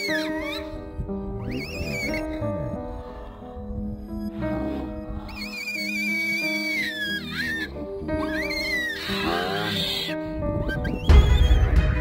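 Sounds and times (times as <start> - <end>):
baby monkey screaming: 0.0 - 0.8, 1.4 - 2.4, 4.2 - 11.8
background music: 0.0 - 12.0.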